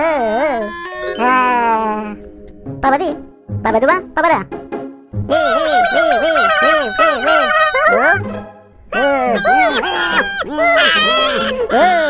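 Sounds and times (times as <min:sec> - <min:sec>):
cartoon voices babbling gibberish: 0:00.0 - 0:02.0, 0:05.3 - 0:08.3, 0:08.9 - 0:12.0.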